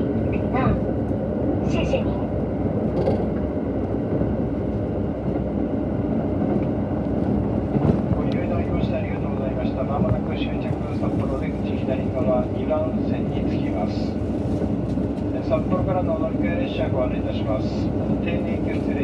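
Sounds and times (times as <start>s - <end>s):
train engine and wheels rumbling: 0.0s - 19.0s.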